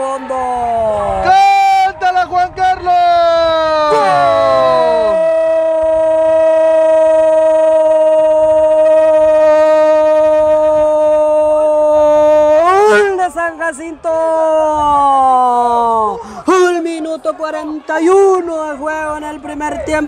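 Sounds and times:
man shouting goal cry: 3.5s - 5.6s, 12.2s - 13.2s.

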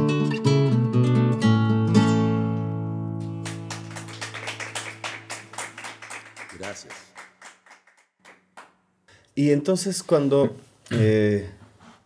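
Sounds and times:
people clapping: 3.2s - 8.8s.

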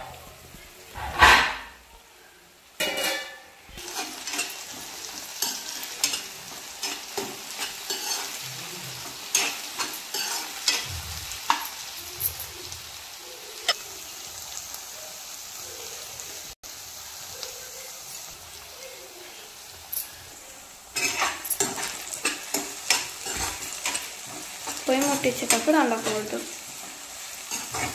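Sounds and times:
vegetables sizzling in oil: 0.0s - 27.9s
spatula scraping a wok: 2.8s - 12.2s, 20.0s - 27.9s.

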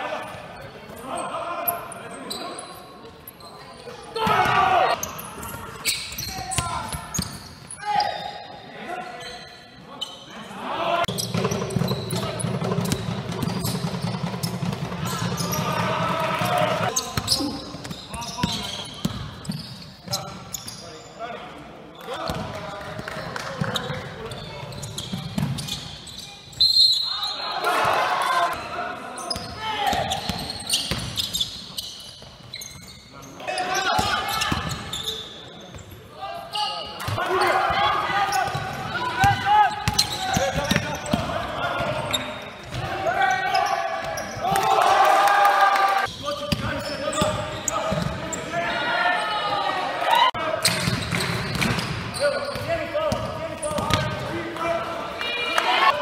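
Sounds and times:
players shouting: 4.0s - 5.6s, 15.0s - 17.6s, 27.1s - 30.4s, 36.4s - 46.1s, 46.8s - 50.7s
basketball bouncing on wooden floor: 11.1s - 15.8s.

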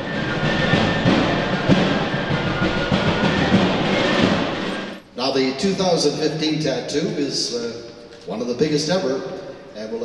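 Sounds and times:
rapid drumming: 0.0s - 5.0s.

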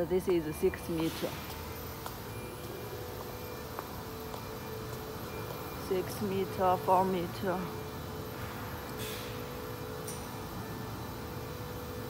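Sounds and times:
machinery hum: 0.0s - 12.0s.

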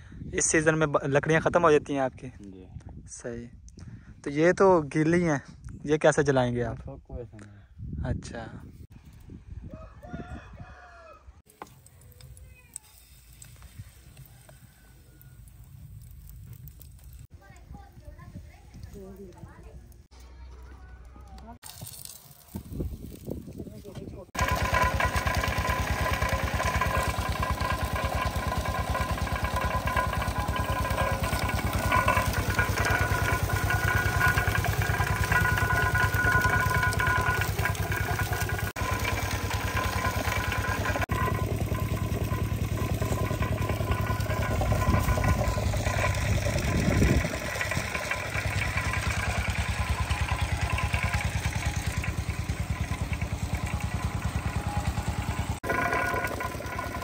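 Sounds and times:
sugarcane crusher engine running: 23.8s - 57.0s
cane stalks crushed between rollers: 24.4s - 57.0s.

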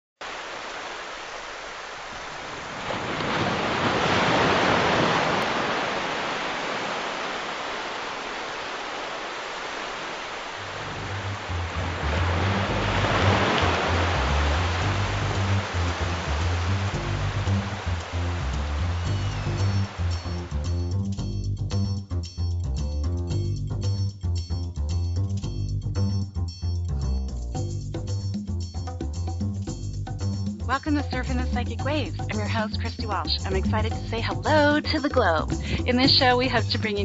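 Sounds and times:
ocean waves breaking: 0.2s - 21.1s
low bass notes music: 10.8s - 37.0s.

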